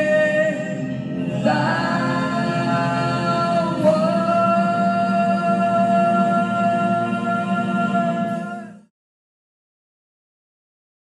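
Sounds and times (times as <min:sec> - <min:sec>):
karaoke backing track: 0:00.0 - 0:08.9
woman singing into microphone: 0:01.3 - 0:08.7.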